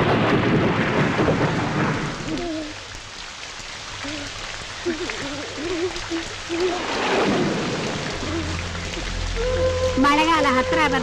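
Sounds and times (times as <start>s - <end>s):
rumble of thunder: 0.0s - 2.7s, 6.7s - 10.2s
heavy rain pouring: 0.0s - 11.0s
low wavering howl: 8.1s - 11.0s.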